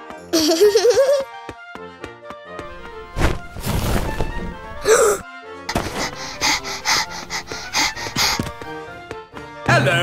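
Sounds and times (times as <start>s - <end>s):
soft background music: 0.0s - 10.0s
breathy gasps or sniffs: 4.8s - 8.8s.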